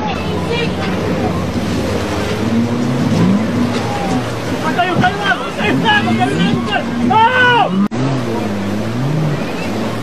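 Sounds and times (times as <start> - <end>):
outboard motors running hard: 0.0 - 10.0
rush of water and spray: 0.0 - 10.0.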